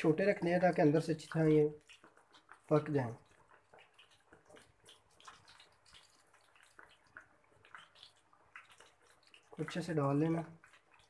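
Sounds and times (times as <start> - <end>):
batter sizzling in hot oil: 0.0 - 11.0.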